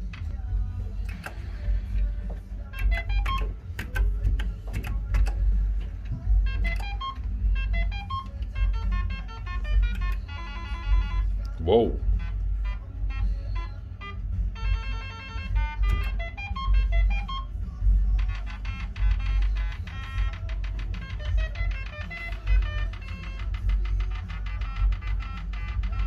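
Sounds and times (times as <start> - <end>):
slot machine beep melodies: 2.6 - 26.0
fast run of beeps: 2.7 - 4.0, 6.4 - 11.3, 11.9 - 26.0.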